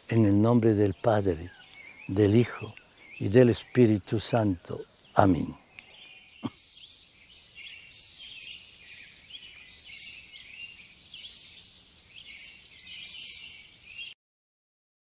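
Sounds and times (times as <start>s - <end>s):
high insect hum: 0.0s - 14.1s
small birds chirping: 0.0s - 14.2s.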